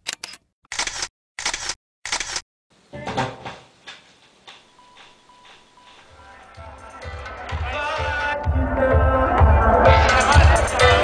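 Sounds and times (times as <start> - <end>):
camera shutter clicks: 0.0 - 2.4.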